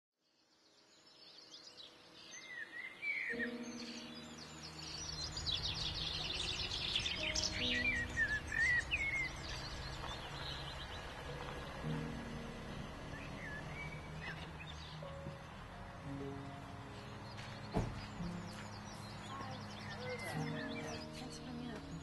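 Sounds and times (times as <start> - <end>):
birds singing and chirping: 0.6 - 22.0.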